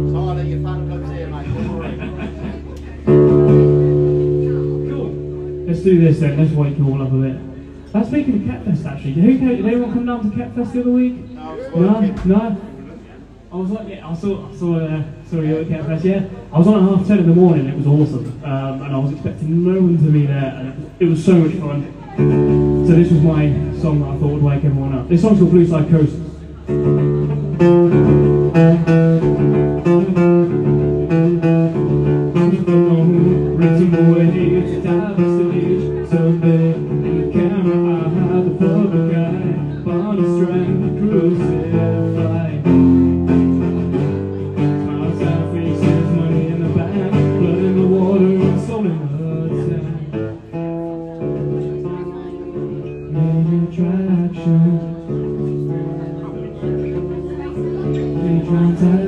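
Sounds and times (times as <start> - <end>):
acoustic guitar strumming: 0.0 - 10.9, 15.0 - 59.0
man singing: 29.8 - 31.5, 32.3 - 50.3, 52.8 - 55.8, 57.8 - 59.0.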